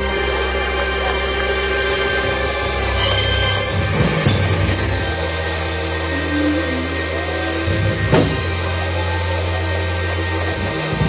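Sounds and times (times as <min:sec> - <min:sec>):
church worship music: 0:00.0 - 0:11.0
sustained low bass chord: 0:00.0 - 0:11.0
drum hit: 0:08.0 - 0:08.8.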